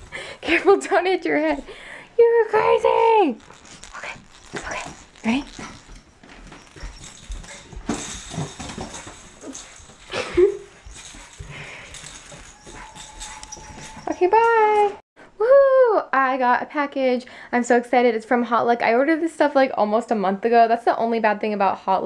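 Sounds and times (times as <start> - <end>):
rustling and handling noise: 2.4 - 15.0
dog whimpering: 9.4 - 15.0.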